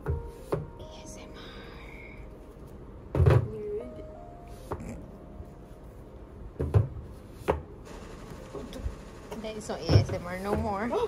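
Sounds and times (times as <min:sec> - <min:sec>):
books knocking on cabinet top: 0:03.1 - 0:03.5, 0:06.6 - 0:07.7.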